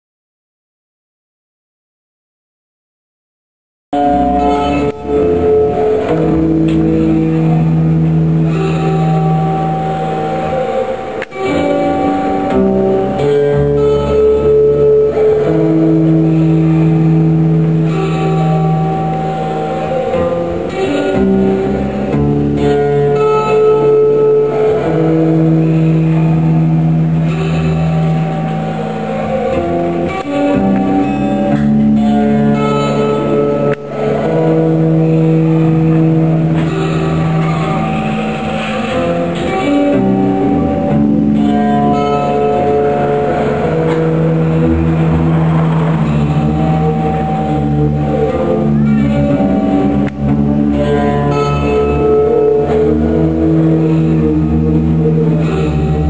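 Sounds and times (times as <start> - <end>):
acoustic guitar fingerpicking: 4.0 - 56.0.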